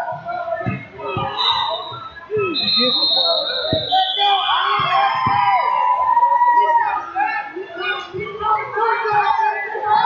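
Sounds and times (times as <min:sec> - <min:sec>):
people shouting: 0:00.0 - 0:10.0.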